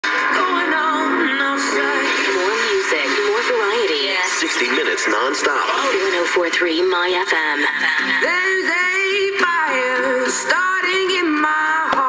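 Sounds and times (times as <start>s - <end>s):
music with singing on radio: 0.0s - 12.0s.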